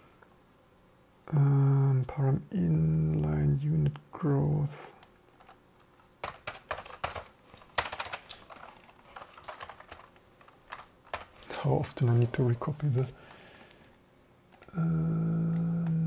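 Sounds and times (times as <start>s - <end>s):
man talking: 1.3s - 5.0s, 11.4s - 13.2s, 14.7s - 16.0s
typing on computer keyboard: 6.2s - 11.6s.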